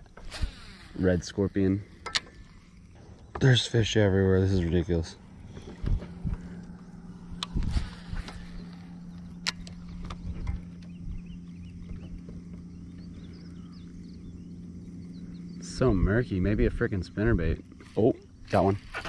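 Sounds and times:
electric trolling motor humming: 0.0s - 19.0s
rod and reel clicks and knocks: 2.0s - 2.6s.

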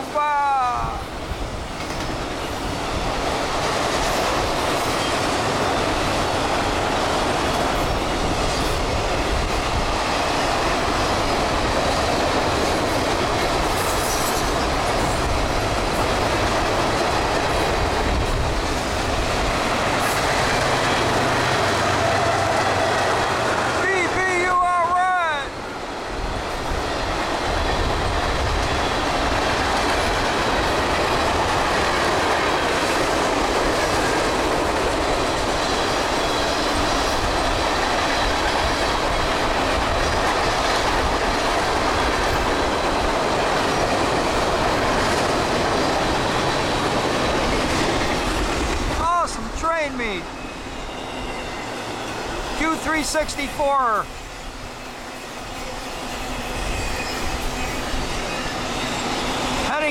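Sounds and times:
train wheels rumbling on rail: 0.0s - 59.9s.

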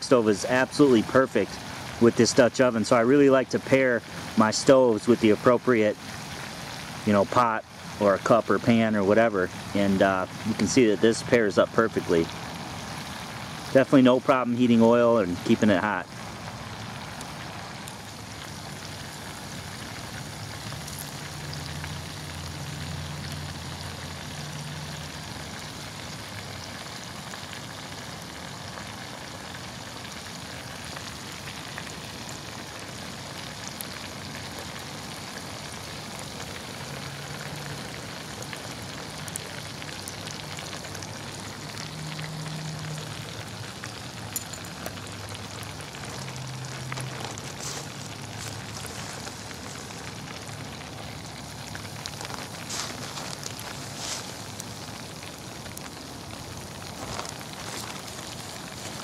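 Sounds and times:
fish deep-frying in oil: 0.0s - 59.0s.

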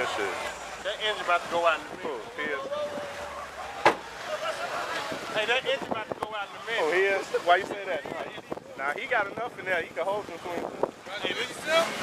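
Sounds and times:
background chatter: 0.0s - 12.0s.

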